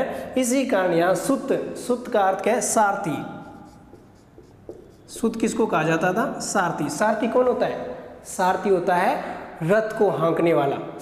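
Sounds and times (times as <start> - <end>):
marker pen squeaking on whiteboard: 3.0 - 5.7.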